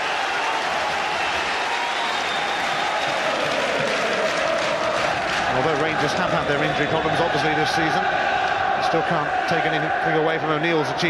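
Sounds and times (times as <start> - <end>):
stadium crowd applauding and cheering: 0.0 - 11.0.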